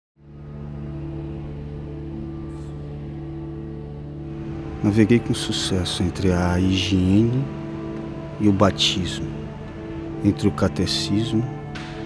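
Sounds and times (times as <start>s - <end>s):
low drone of held tones: 0.2s - 12.0s.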